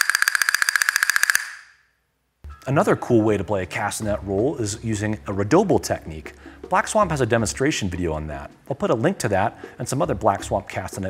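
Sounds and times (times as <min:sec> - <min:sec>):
castanets rapid clicking roll: 0:00.0 - 0:01.7.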